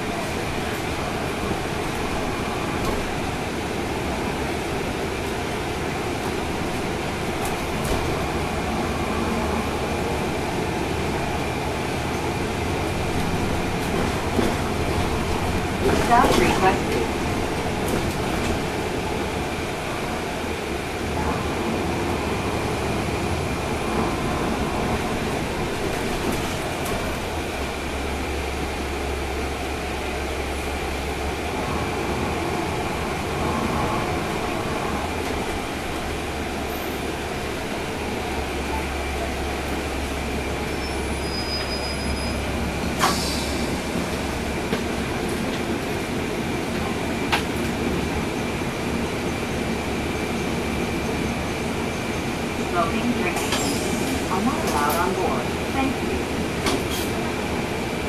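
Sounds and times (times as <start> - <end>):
bus diesel engine running: 0.0 - 58.0
cabin and road noise: 0.0 - 58.0.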